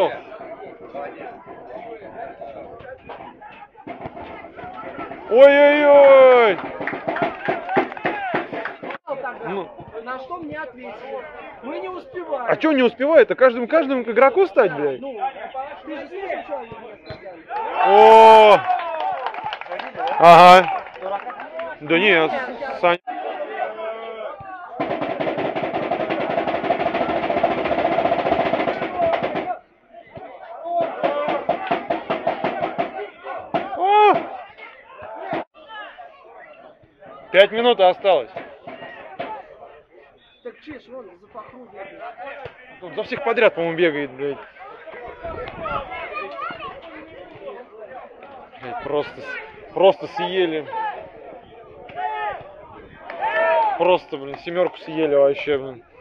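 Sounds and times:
outdoor background noise: 0.0s - 56.0s
voices: 0.0s - 56.0s
rapid drum roll: 6.5s - 9.0s, 24.8s - 29.6s, 30.8s - 34.3s.

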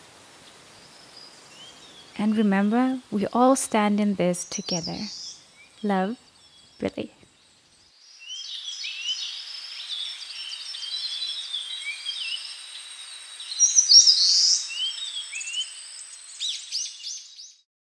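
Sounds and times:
songbirds chirping: 0.4s - 17.6s.

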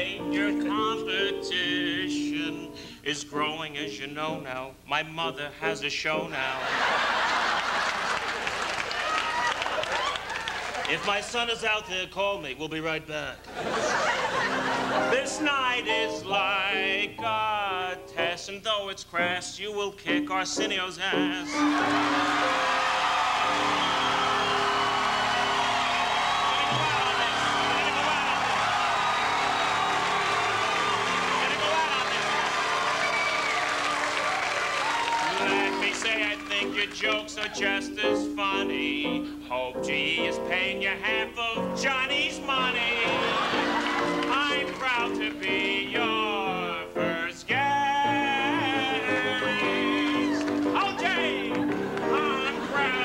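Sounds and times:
audience laughing and applauding: 6.5s - 11.4s, 13.4s - 16.0s, 21.5s - 37.9s, 42.4s - 46.4s, 47.8s - 53.0s.

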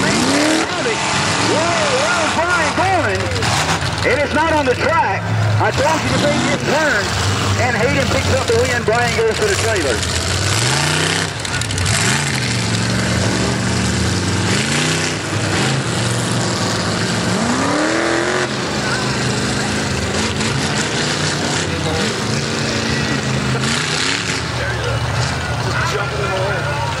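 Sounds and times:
truck engines idling and revving: 0.0s - 27.0s.

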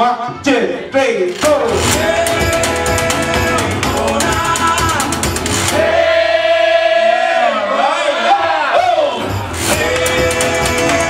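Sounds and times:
man singing: 1.3s - 5.3s, 9.6s - 11.0s
resonator guitar: 1.3s - 5.9s.

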